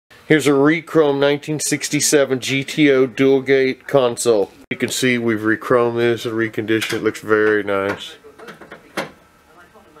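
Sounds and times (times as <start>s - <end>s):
faint room noise: 0.1s - 10.0s.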